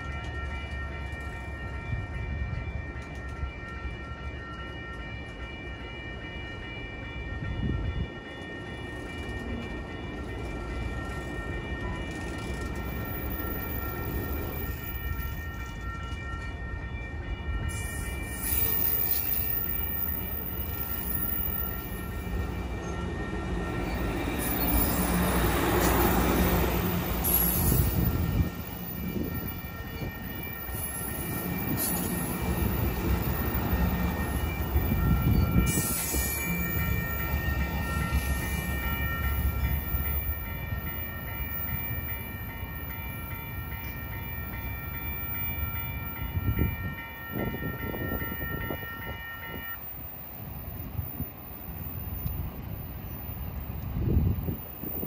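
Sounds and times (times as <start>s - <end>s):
train cars rumbling past: 0.0s - 55.0s
high ringing tone: 0.2s - 53.5s.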